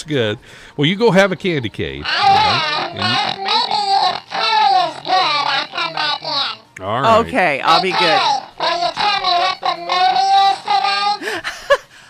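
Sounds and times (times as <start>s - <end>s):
high-pitched voice singing: 2.0s - 11.3s.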